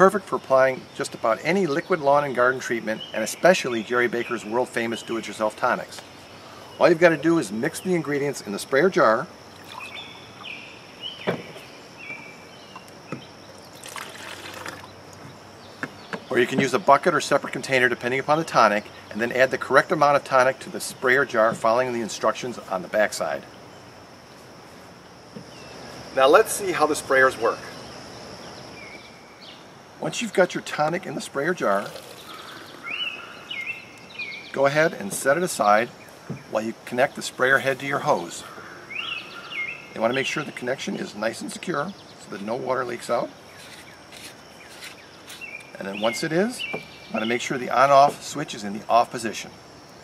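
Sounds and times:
faint steady hiss: 0.0s - 50.0s
liquid pouring into glass: 9.6s - 10.0s, 13.8s - 14.9s, 31.8s - 32.7s
thin whistled bird calls: 9.6s - 13.8s, 32.1s - 34.6s.

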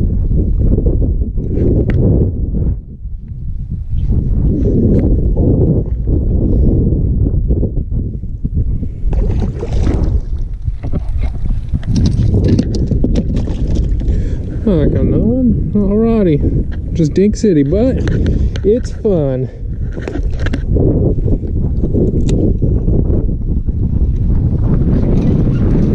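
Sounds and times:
wind on microphone: 0.0s - 25.9s
water lapping against kayak: 8.9s - 14.7s.

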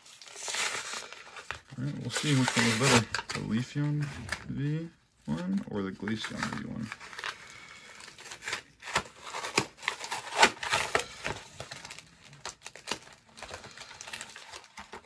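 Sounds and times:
plastic packaging crackling: 0.0s - 15.0s.

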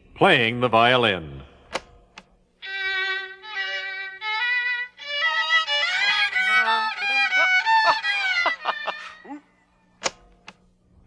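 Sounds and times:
solo violin playing: 2.6s - 9.2s.

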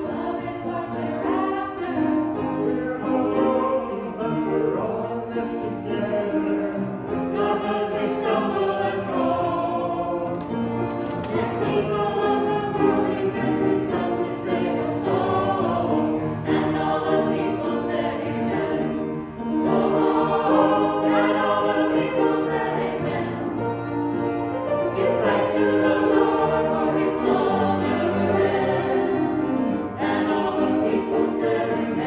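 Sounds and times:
choir singing sustained notes: 0.0s - 32.0s.

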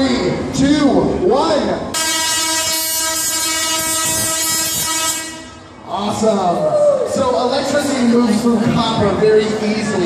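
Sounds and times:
tesla coil buzzing: 2.0s - 5.6s.

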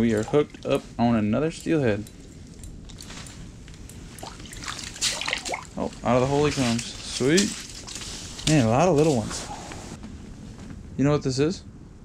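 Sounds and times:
fish splashing in water: 4.2s - 5.8s.

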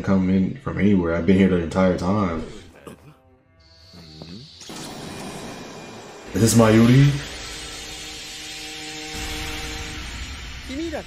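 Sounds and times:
drone of held tones: 3.5s - 10.7s.

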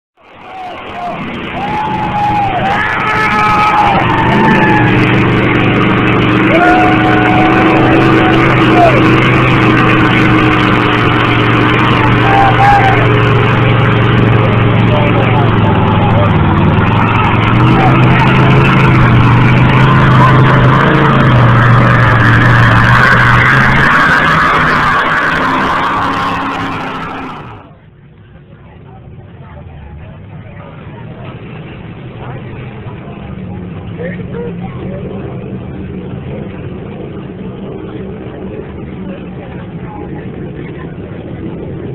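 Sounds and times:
crowd voices: 0.2s - 41.9s
truck engine running under load: 0.2s - 41.9s.

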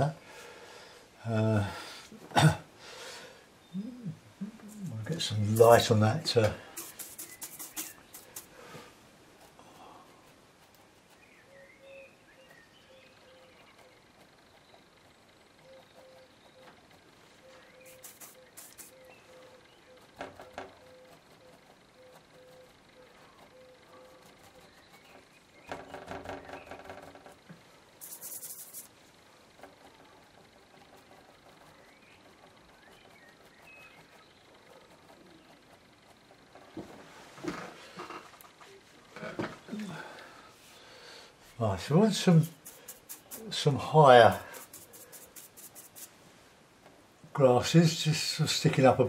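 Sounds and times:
bristle brush scrubbing paint: 5.1s - 8.6s, 17.8s - 19.0s, 28.0s - 36.4s, 41.6s - 46.2s.

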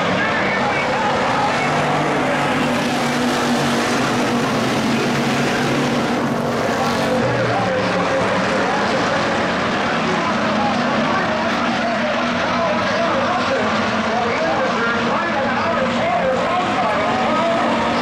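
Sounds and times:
race car engines droning: 0.0s - 18.0s.

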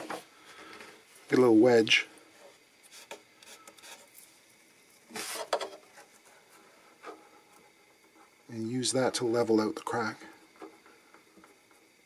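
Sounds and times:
wood-on-wood rubbing scrape: 2.8s - 4.2s, 5.1s - 8.3s.

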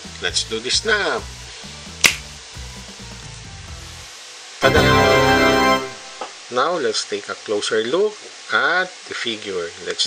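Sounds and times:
quiet background music: 0.0s - 6.4s
finger snap: 2.0s - 2.4s
held organ-like keyboard chord: 4.6s - 6.3s.

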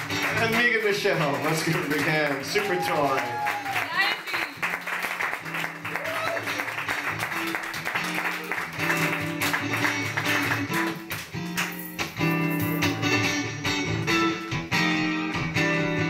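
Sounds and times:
electric guitar strumming chords: 0.0s - 2.6s, 4.7s - 16.0s.

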